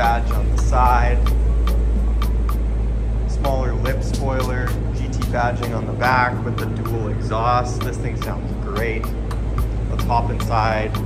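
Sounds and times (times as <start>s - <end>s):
deep rumble: 0.0s - 11.0s
music with a steady beat: 0.0s - 11.0s.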